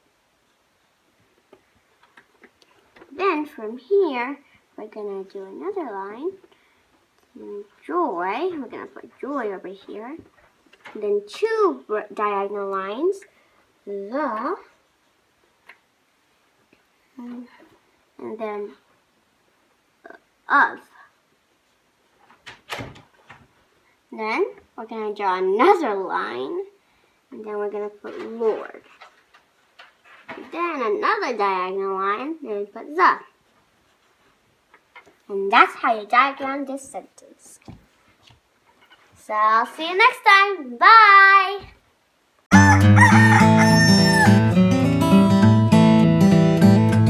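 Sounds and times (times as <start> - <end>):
rooster crowing: 42.5 - 44.6
acoustic guitar music: 42.5 - 47.0.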